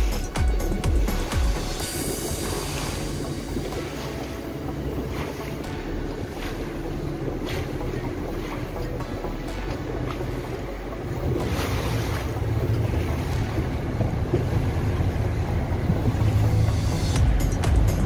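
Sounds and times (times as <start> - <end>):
boat motor running: 0.0 - 18.0
water rushing past hull: 0.0 - 18.0.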